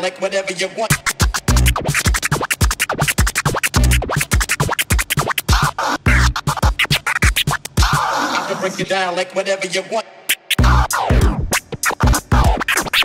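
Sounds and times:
turntable scratching: 0:00.8 - 0:08.9, 0:10.3 - 0:13.0
heavy bass hits: 0:10.6 - 0:11.4.

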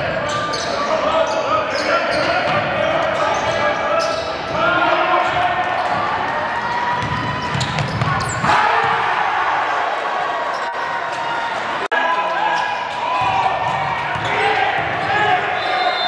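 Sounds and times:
spectators' voices and shouts: 0:00.0 - 0:16.0.

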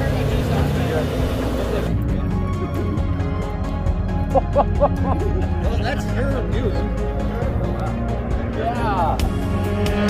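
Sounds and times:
rotary engine idling: 0:00.0 - 0:02.8
background music: 0:00.0 - 0:10.0.

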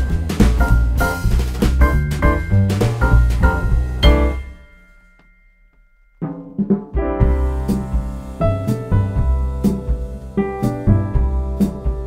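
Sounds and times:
drum strokes: 0:00.0 - 0:05.0, 0:06.2 - 0:12.0.

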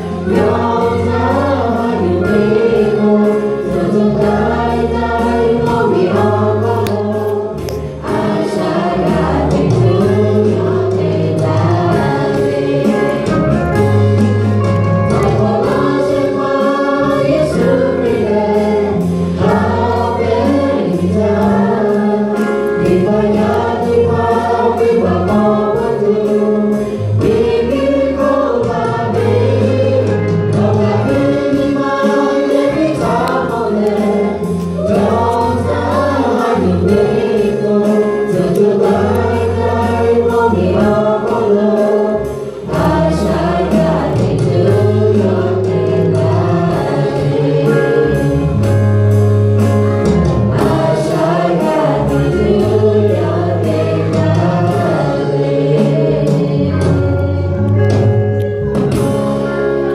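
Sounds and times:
women singing together: 0:00.0 - 0:13.6, 0:15.2 - 0:48.7, 0:50.5 - 0:57.6
band with bass and beat: 0:00.0 - 0:59.9.

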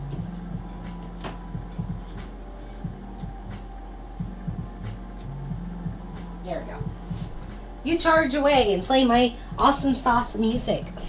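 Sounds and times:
background music bass line: 0:00.0 - 0:11.0
steady electrical hum: 0:00.0 - 0:11.0.

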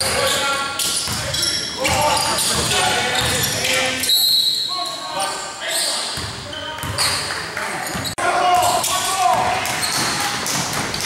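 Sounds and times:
players' voices echoing: 0:00.0 - 0:11.0.

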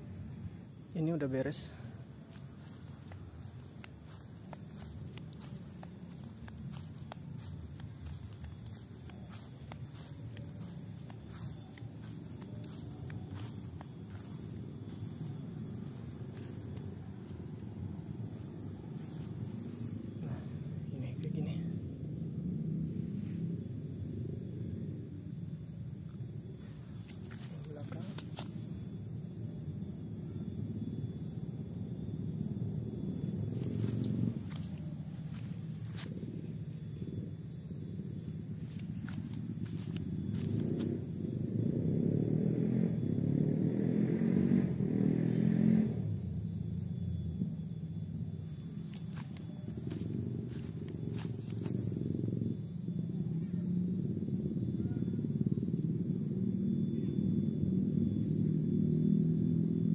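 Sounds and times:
low motor engine rumble: 0:00.0 - 0:59.9.

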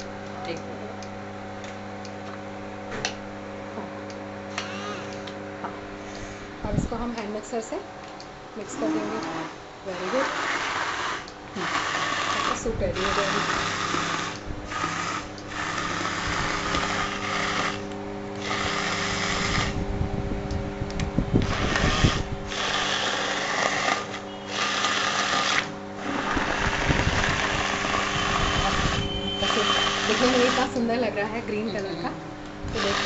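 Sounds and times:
electric hand blender running: 0:04.6 - 0:05.1, 0:08.7 - 0:19.8, 0:21.4 - 0:31.3, 0:32.7 - 0:33.0.

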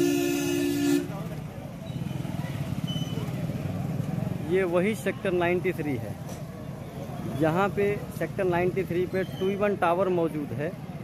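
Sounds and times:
vehicle horn honk: 0:00.0 - 0:01.3
traffic engines rumbling: 0:00.0 - 0:11.0.

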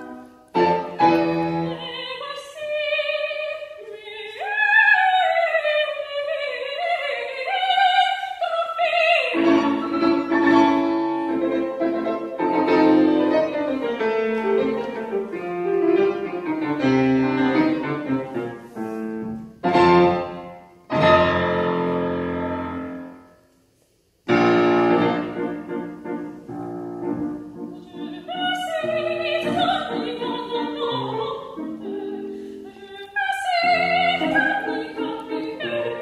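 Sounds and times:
loud piano chords: 0:00.0 - 0:01.9, 0:09.3 - 0:23.4, 0:24.2 - 0:32.5
grand piano playing: 0:00.0 - 0:02.2, 0:09.3 - 0:23.4, 0:24.3 - 0:36.0.

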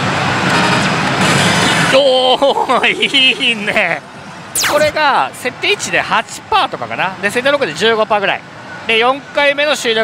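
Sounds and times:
dense din of gaming hall: 0:00.0 - 0:10.0
slot machine effects: 0:04.6 - 0:05.0.

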